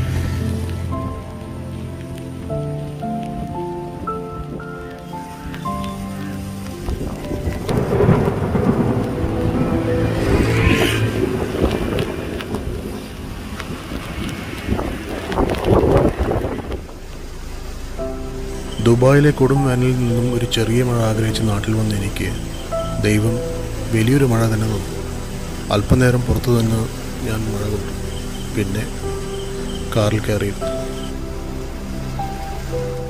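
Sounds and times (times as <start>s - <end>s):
background music with held notes: 0.0s - 14.7s, 17.0s - 33.0s
heavy rain pouring: 0.0s - 33.0s
deep rumbling surges: 6.8s - 33.0s.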